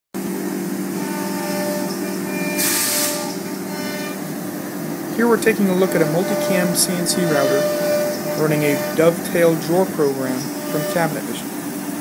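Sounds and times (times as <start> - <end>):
cnc router droning: 0.2 - 12.0
burst of hiss: 2.6 - 3.4.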